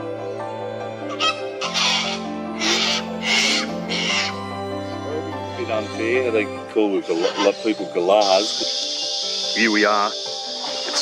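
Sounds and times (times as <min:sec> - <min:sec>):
background music: 0:00.0 - 0:11.0
cockatoo screeching: 0:01.1 - 0:04.4, 0:07.0 - 0:11.0.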